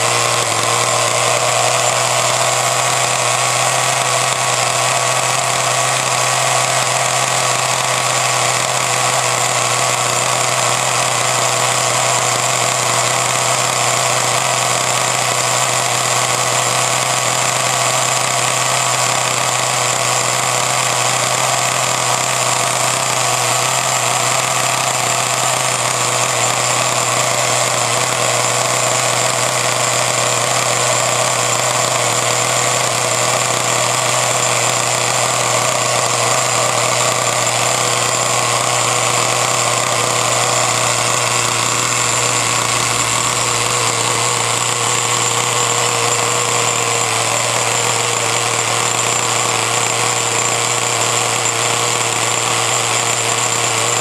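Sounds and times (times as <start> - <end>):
small two-stroke engine running: 0.0 - 54.0.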